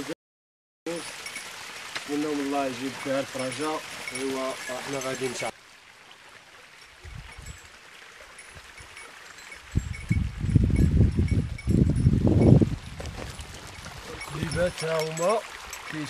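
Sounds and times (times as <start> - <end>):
faint high tinkling: 0.9 - 5.6, 6.8 - 16.0.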